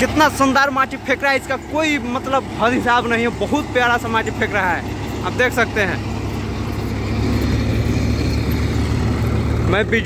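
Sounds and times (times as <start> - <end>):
tractor engine running: 0.0 - 10.0
man's voice: 9.6 - 10.0.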